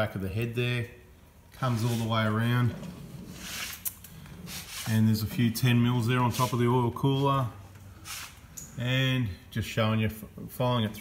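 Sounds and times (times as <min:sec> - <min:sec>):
soft rubbing: 0:01.6 - 0:08.5.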